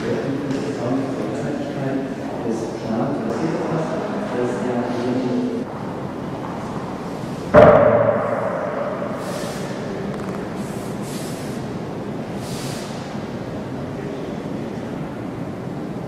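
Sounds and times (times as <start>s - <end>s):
voices murmuring in echoing hall: 0.0s - 16.0s
sudden ringing thump: 7.6s - 9.2s.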